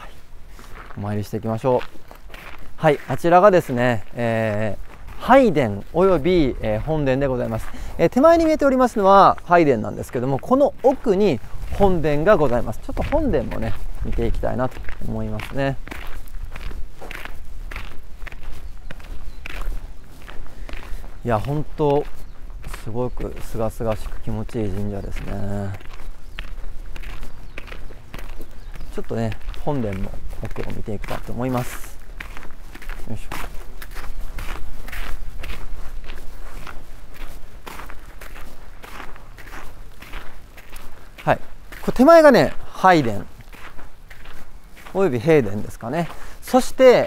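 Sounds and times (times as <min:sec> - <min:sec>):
footsteps on gravel: 0:00.0 - 0:47.0.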